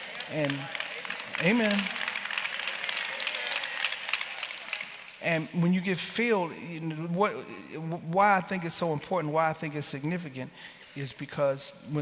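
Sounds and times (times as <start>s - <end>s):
congregation clapping: 0.0s - 7.1s.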